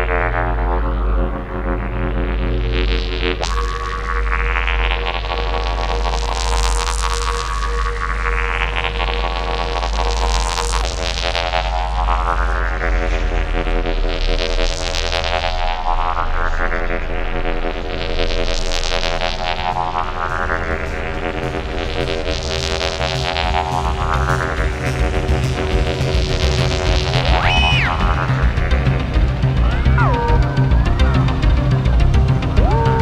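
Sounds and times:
ambient synthesizer music: 15.6 - 33.0.

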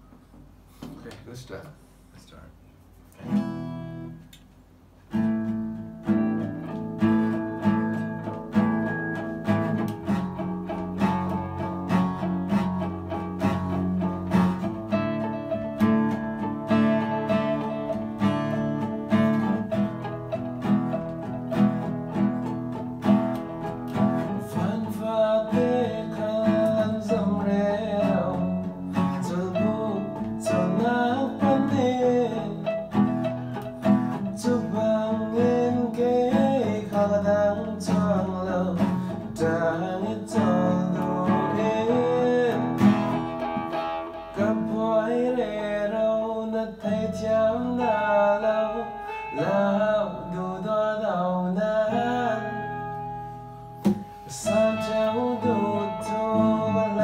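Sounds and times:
acoustic guitar strumming chords: 3.2 - 57.0
electric guitar melody with bends: 5.1 - 57.0.

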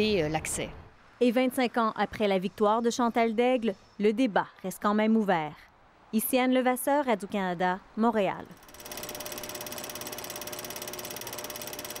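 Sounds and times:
film projector clattering: 8.5 - 12.0.

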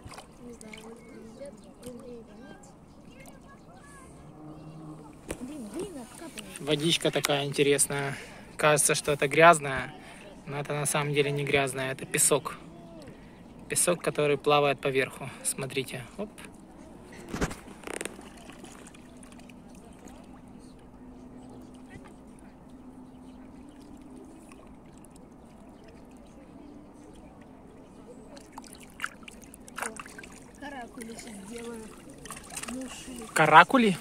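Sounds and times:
hands splashing river water: 0.0 - 2.1, 4.9 - 7.6, 16.4 - 22.6, 23.2 - 34.0.

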